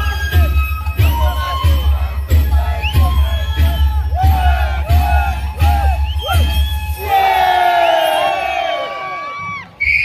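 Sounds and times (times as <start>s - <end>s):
fast drum beat: 0.0s - 7.0s.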